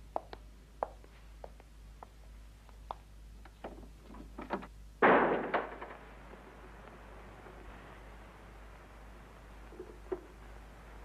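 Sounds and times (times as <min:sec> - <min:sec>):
door slamming shut: 0:04.5 - 0:06.1.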